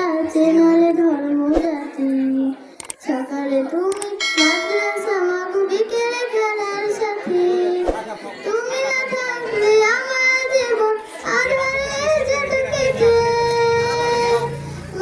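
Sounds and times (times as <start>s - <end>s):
person singing: 4.2s - 6.1s.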